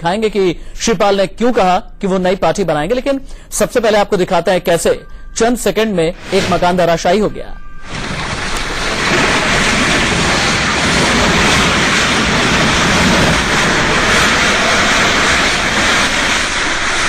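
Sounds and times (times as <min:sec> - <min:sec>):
house collapsing with falling debris: 0:07.8 - 0:17.0.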